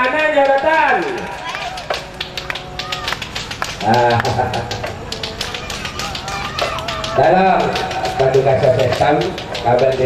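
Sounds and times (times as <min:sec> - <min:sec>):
frame drums slapped: 0:00.5 - 0:10.0.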